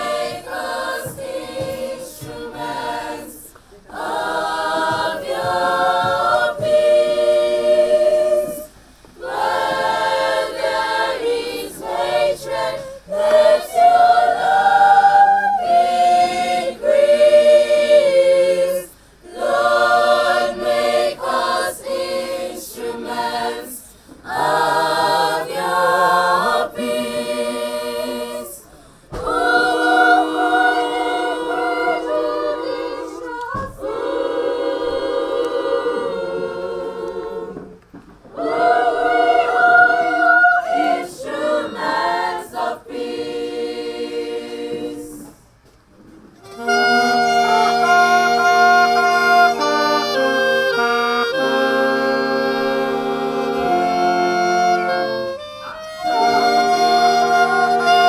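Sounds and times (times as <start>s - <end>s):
girls choir singing a cappella: 0.0s - 45.6s, 46.4s - 58.0s.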